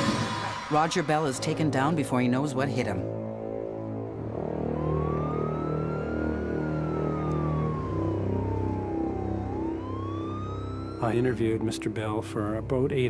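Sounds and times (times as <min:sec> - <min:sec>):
background music: 0:00.0 - 0:13.0
police siren wailing: 0:03.8 - 0:12.7.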